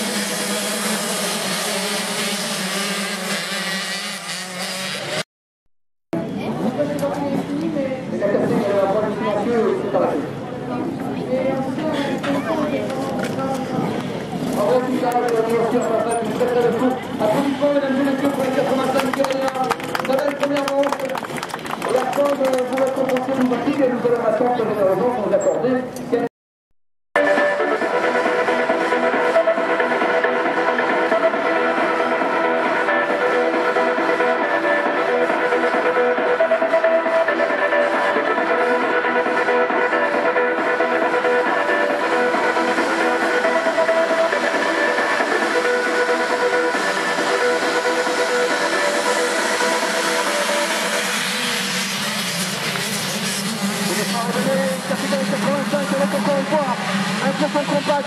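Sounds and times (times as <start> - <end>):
motocross bikes revving: 0.0 - 5.2, 11.4 - 20.2, 30.2 - 58.0.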